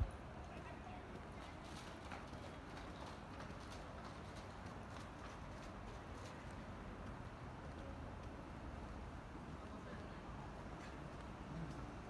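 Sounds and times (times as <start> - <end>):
faint low city rumble: 0.0 - 12.0
footsteps on paved street: 0.0 - 12.0.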